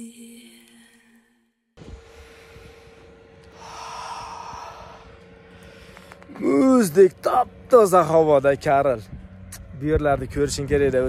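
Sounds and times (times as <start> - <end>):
faint steady hum: 0.0 - 11.0
man breathing: 1.8 - 6.3.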